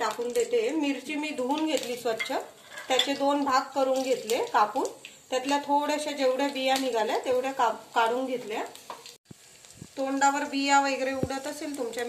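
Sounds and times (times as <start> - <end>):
chillies sizzling in a pan: 0.0 - 12.0.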